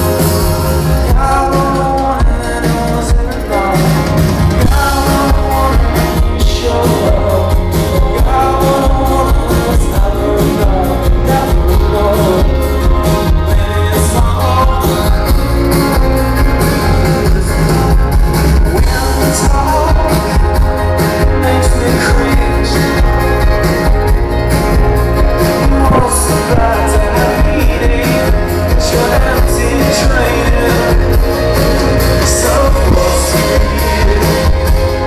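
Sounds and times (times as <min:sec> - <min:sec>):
acoustic guitar: 0:00.0 - 0:35.0
drum kit: 0:00.0 - 0:35.0
man singing: 0:00.0 - 0:35.0.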